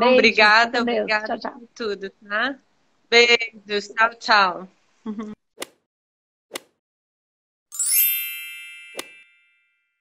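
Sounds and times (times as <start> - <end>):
bright shimmering chime: 7.8 - 9.9.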